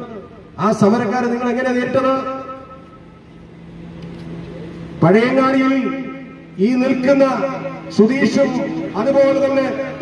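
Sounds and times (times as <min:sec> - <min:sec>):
man's voice through loudspeaker: 0:00.0 - 0:02.7, 0:05.0 - 0:10.0
vehicle engine running: 0:00.0 - 0:10.0.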